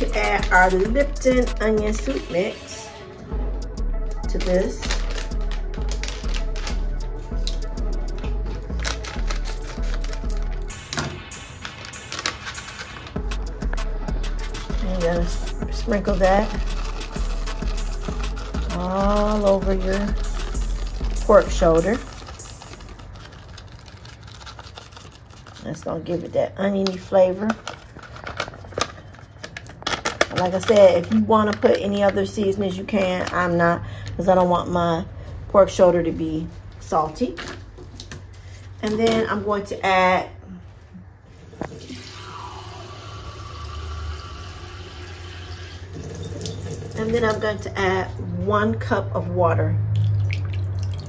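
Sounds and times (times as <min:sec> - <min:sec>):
paper packet rustling: 0:04.3 - 0:13.3, 0:14.4 - 0:34.1
faucet running water into cup: 0:41.5 - 0:47.4.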